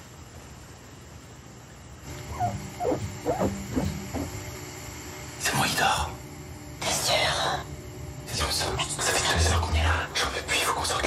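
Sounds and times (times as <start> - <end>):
low hum: 2.0 - 10.0
person whimpering: 2.3 - 4.3.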